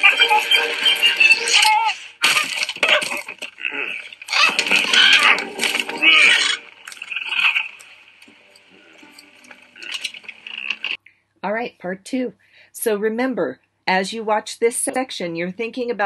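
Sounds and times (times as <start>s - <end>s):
clattering and cracking: 0.0s - 11.0s.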